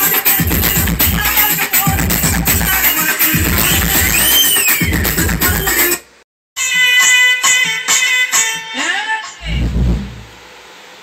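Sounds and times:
music from amplifier: 0.0s - 10.3s
deep bass boom: 9.4s - 10.4s.

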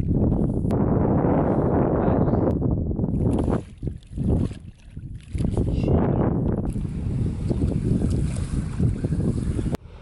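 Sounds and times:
wind rumbling on microphone: 0.0s - 10.0s
water splashing and sloshing: 3.1s - 9.6s.

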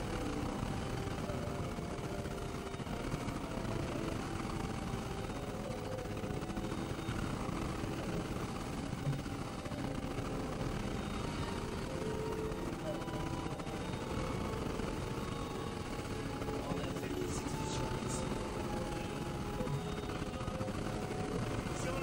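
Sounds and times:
faint held synth tones: 0.0s - 22.0s
synthesizer noise drones: 0.0s - 22.0s.

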